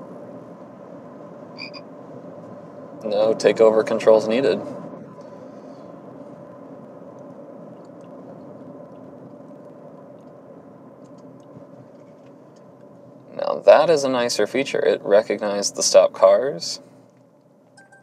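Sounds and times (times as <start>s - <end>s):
car cabin road noise: 0.0s - 17.8s
thin steady hum: 0.0s - 18.0s.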